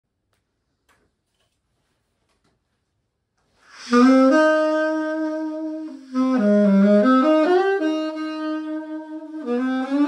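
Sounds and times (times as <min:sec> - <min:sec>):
alto saxophone notes: 0:03.6 - 0:10.0.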